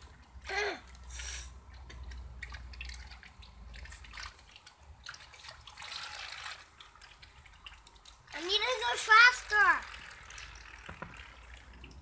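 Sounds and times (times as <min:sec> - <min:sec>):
water trickling and dripping: 0:00.0 - 0:12.0.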